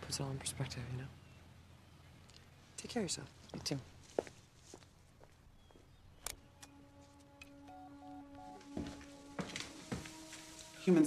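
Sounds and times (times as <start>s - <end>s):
faint footsteps: 3.3s - 11.0s
soft background music: 6.3s - 11.0s.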